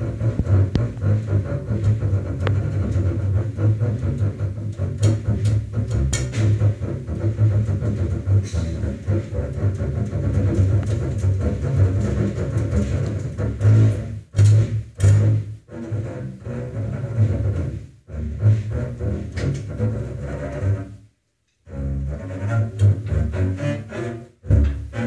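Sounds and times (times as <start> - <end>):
double bass playing low notes: 0.0 - 25.0.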